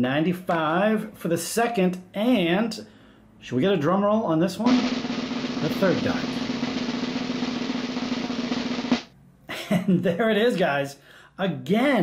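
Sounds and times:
snare drum roll: 0:04.7 - 0:09.1.

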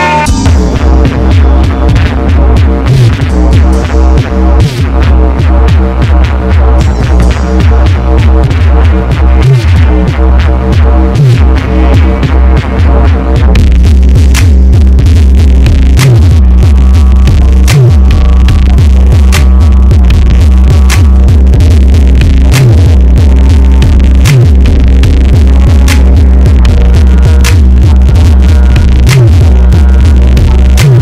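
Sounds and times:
distorted bass drone: 0:00.0 - 0:31.0
falling bass swoop: 0:00.0 - 0:31.0
crackling static and clicks: 0:07.9 - 0:31.0.

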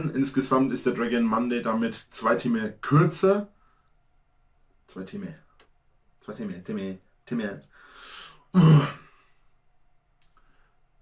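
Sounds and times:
breathy exhale: 0:07.7 - 0:09.5
throaty burst: 0:07.8 - 0:09.3.

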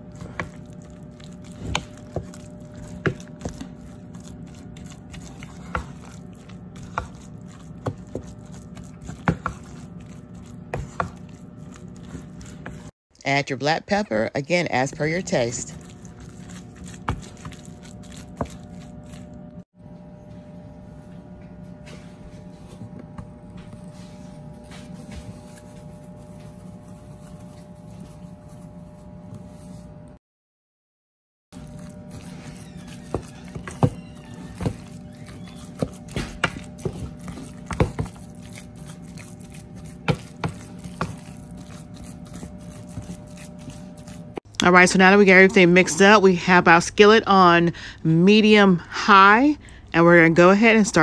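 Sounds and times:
steady low hum: 0:00.0 - 0:30.2, 0:31.6 - 0:51.0.

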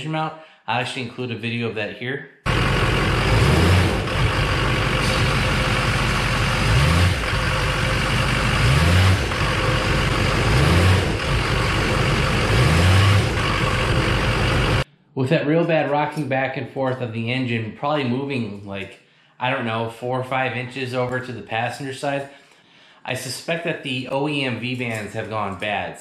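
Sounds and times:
diesel engine revving: 0:02.5 - 0:14.8.

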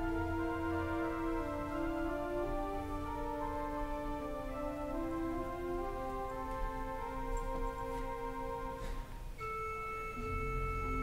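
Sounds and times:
church organ playing chords: 0:00.0 - 0:11.0.

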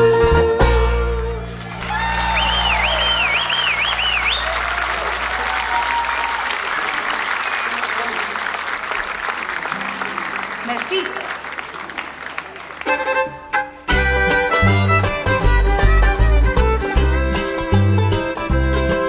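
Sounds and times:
crowd applauding and cheering: 0:01.0 - 0:15.0
wavering whistle: 0:01.9 - 0:08.0.

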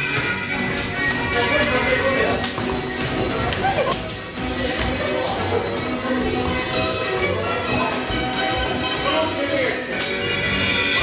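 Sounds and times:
people's voices: 0:00.0 - 0:10.3
loud dance music: 0:00.0 - 0:11.0.

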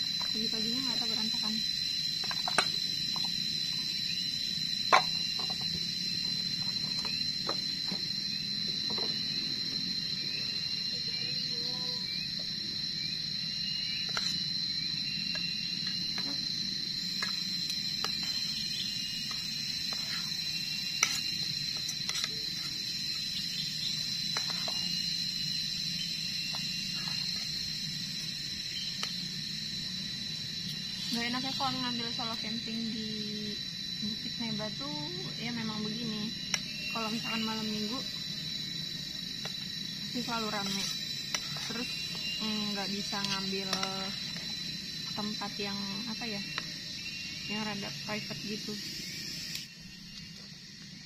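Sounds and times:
insect drone with chirps: 0:00.0 - 0:51.0.

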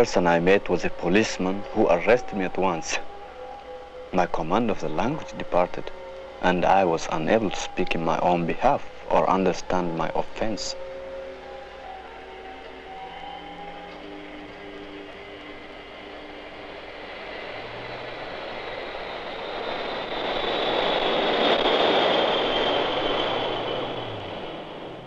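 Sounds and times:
high whine falling in pitch: 0:00.0 - 0:25.0
jet aircraft noise: 0:00.0 - 0:25.0.

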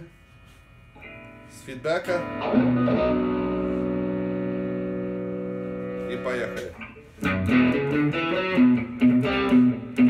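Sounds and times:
guitar feedback: 0:00.0 - 0:10.0
distorted electric guitar chord: 0:01.0 - 0:10.0.

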